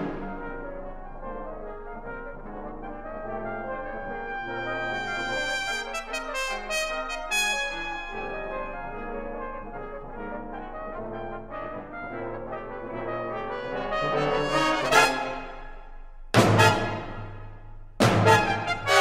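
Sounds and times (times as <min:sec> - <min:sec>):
brass band playing: 0:00.0 - 0:19.0.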